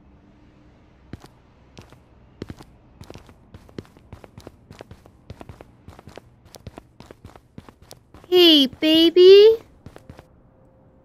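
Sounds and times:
quick faint footsteps: 1.1 - 10.3.

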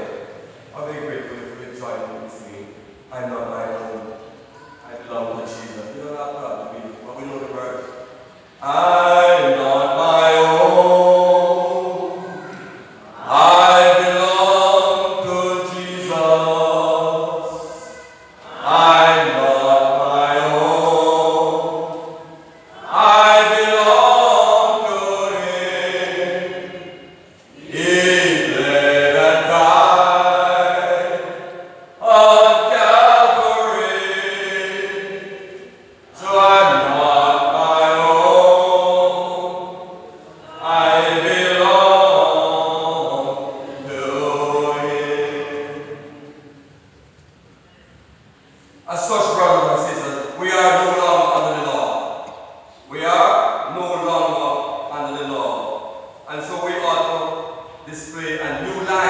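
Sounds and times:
preacher chanting: 0.0 - 46.6, 48.9 - 59.0
voices singing slow hymn: 0.0 - 59.0.

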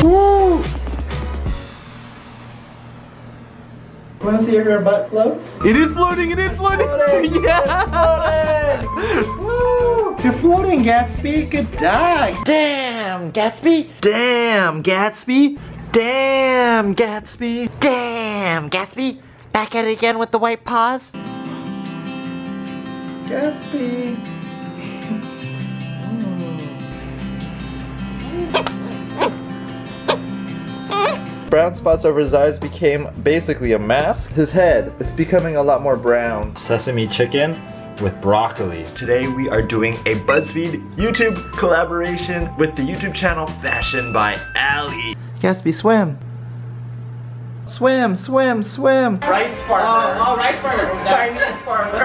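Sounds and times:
background music: 0.0 - 2.7, 5.5 - 12.5, 21.2 - 45.2, 49.2 - 52.0
puppy yipping: 28.5 - 29.4, 30.9 - 31.2.

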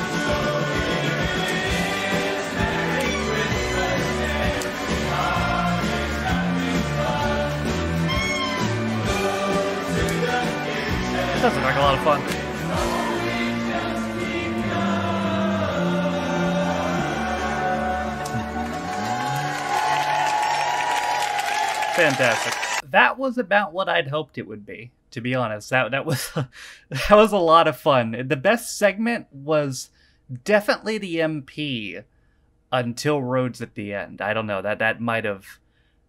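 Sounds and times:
group of voices singing: 0.0 - 20.2
band playing: 0.0 - 20.6
live band playing: 7.8 - 10.3.

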